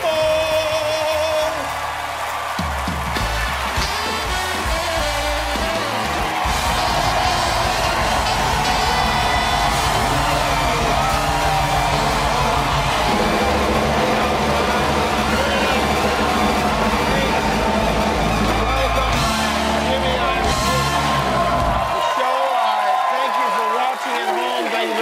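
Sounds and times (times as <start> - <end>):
band music playing: 0.0 - 22.1
audience cheering and clapping: 0.0 - 25.0.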